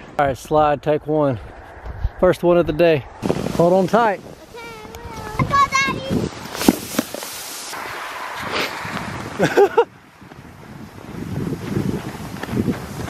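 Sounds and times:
wind: 0:00.0 - 0:13.0
crunching in snow: 0:03.2 - 0:09.6
sled sliding on snow: 0:03.2 - 0:13.0.

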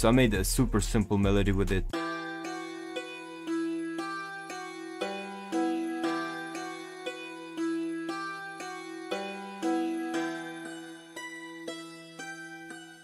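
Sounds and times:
plucked synth melody: 0:01.9 - 0:13.0.

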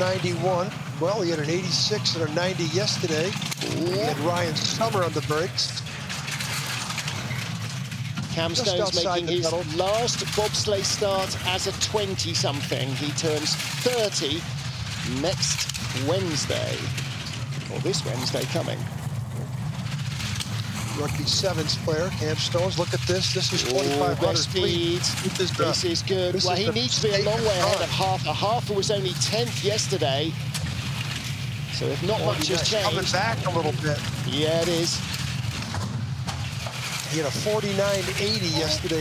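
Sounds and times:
bobsleigh runners rumbling on ice: 0:00.0 - 0:39.0
rapid clatter: 0:00.0 - 0:39.0.

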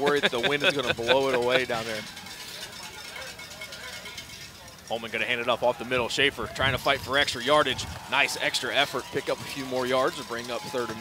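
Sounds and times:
distant crowd murmur: 0:00.0 - 0:11.0.

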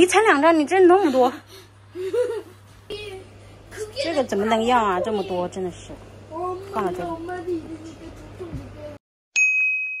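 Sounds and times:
bright chime ding: 0:09.4 - 0:10.0.

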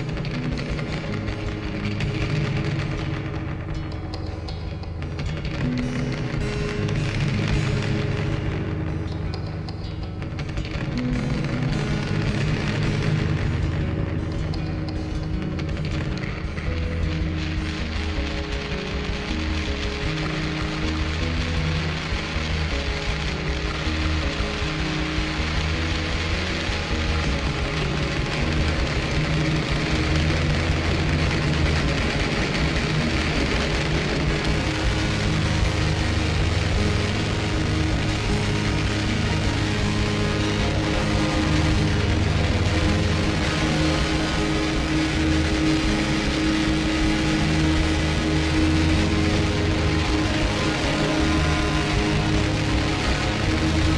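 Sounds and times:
distorted noisy wash: 0:00.0 - 0:53.9
low droning tone: 0:00.0 - 0:53.9.

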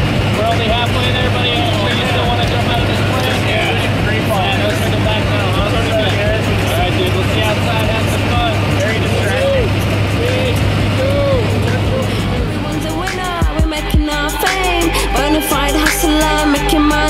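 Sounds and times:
aircraft engine and propeller drone: 0:00.0 - 0:15.2
voices calling out: 0:00.0 - 0:17.0.

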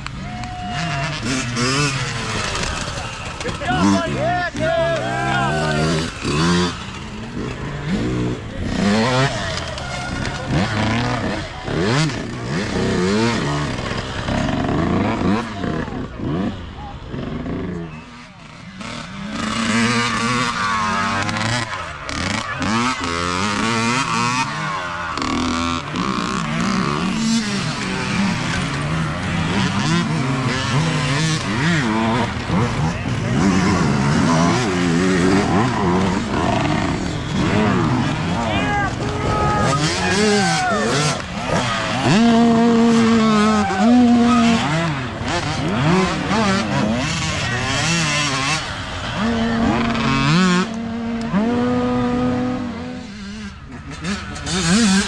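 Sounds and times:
dirt bike engines revving: 0:00.0 - 0:55.0.

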